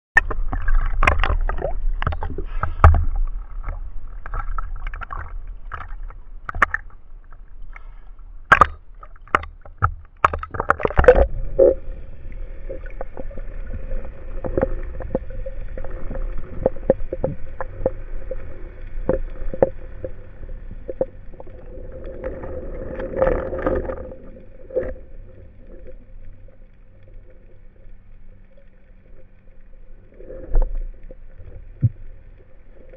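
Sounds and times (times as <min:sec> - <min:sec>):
diving gear knocks and rustles: 0:00.2 - 0:11.8
faint steady hum: 0:00.2 - 0:32.9
low rumble: 0:00.2 - 0:32.9
sea water splashing: 0:00.2 - 0:32.9.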